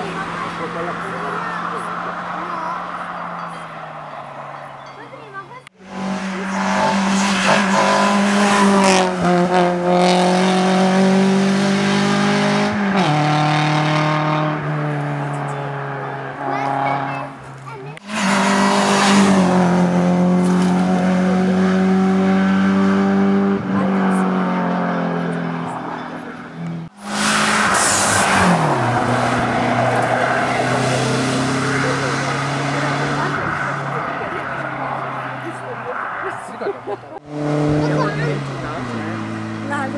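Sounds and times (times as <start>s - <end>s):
race car engines at high revs: 0.0s - 39.9s.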